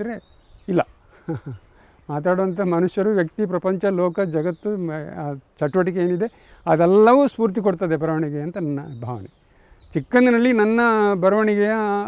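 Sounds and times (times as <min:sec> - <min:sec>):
man talking: 0:00.0 - 0:09.3, 0:09.9 - 0:12.0.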